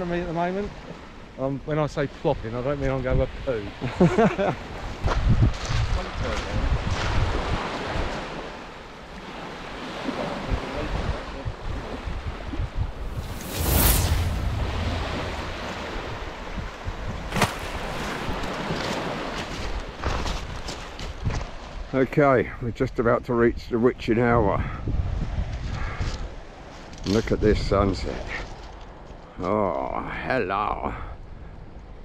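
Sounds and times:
wind buffeting microphone: 4.7s - 8.4s, 10.3s - 21.5s, 24.4s - 26.4s
fishing rod whooshing: 13.0s - 18.4s
waves washing onto shingle: 13.0s - 21.0s.

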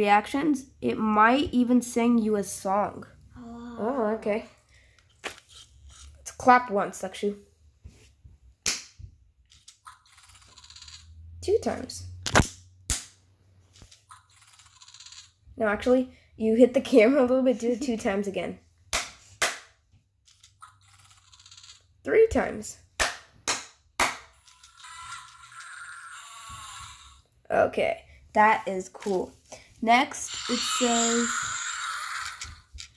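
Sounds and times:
hand clap: 18.9s - 19.7s, 23.0s - 24.2s
electronic toy creature sound: 24.3s - 27.2s, 30.3s - 32.6s.

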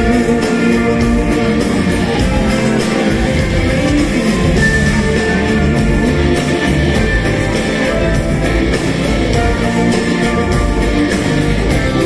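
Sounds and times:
loud live band music: 0.0s - 12.0s.

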